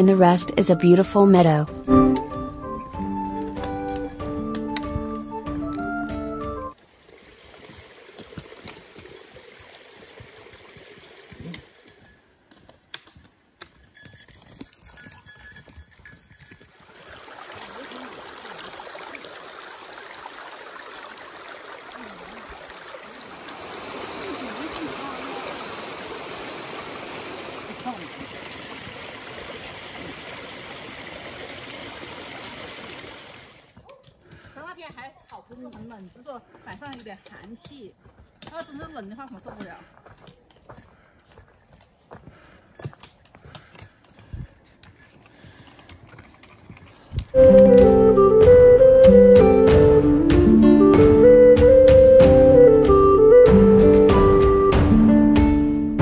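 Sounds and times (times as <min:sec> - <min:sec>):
running water rushing: 0:01.8 - 0:12.0, 0:16.8 - 0:33.7, 0:46.7 - 0:54.2
footsteps on trail: 0:07.5 - 0:17.6, 0:33.7 - 0:48.8.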